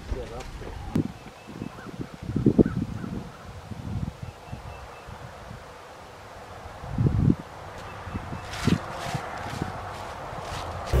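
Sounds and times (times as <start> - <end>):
hands rummaging through dry leaves: 8.4 - 11.0.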